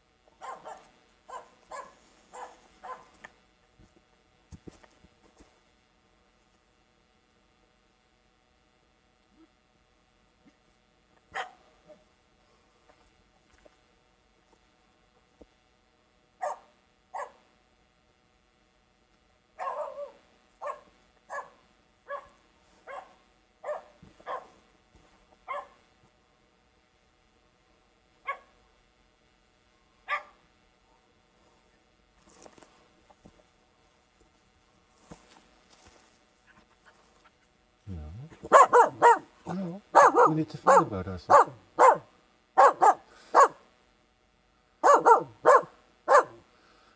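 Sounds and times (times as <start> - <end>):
dog barking: 0.4 - 3.1, 11.3 - 11.6, 16.4 - 17.4, 19.6 - 24.6, 25.5 - 25.8, 28.2 - 28.5, 30.1 - 31.0, 38.5 - 39.3, 39.9 - 43.6, 44.8 - 46.4
footsteps through undergrowth: 32.2 - 37.3.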